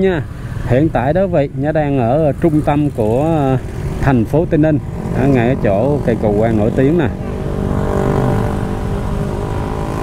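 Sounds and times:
low traffic rumble: 0.0s - 10.0s
motorbikes passing: 0.0s - 10.0s.

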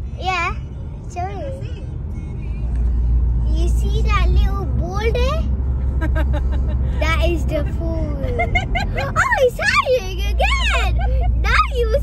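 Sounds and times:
car road and engine rumble: 0.0s - 12.0s.

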